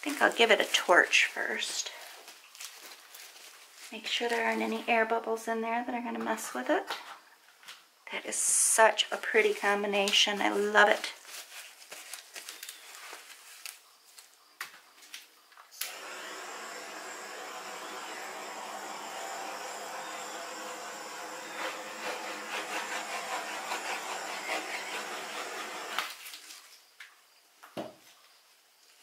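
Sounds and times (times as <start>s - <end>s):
torch flame hissing: 15.8s - 26.2s.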